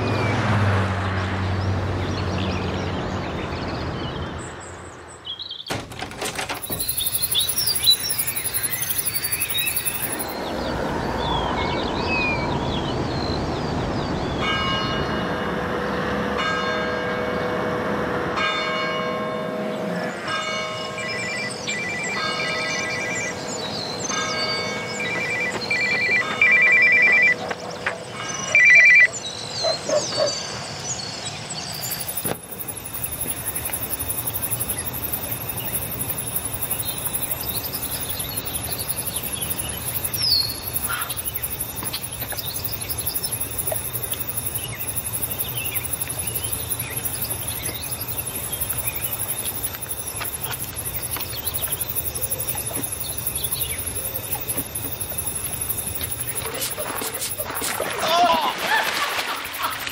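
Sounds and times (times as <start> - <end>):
birds singing: 1.5 - 15.2, 21.0 - 59.9
bell-like chimes ringing: 6.3 - 10.7, 20.2 - 27.5, 31.7 - 59.9.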